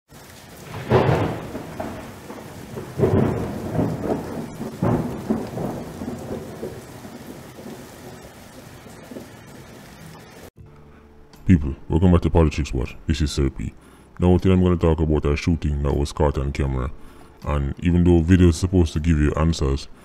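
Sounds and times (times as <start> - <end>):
thunder rumbling: 0.1 - 10.5
steady rain: 0.1 - 10.6.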